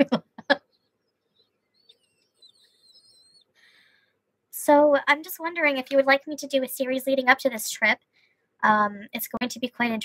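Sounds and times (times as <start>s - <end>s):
woman's faint squeaky laughter: 1.8s - 3.5s.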